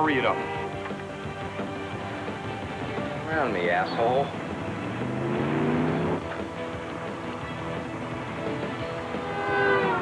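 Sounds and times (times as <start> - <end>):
car engine running hard: 0.0 - 10.0
film music score: 0.0 - 10.0.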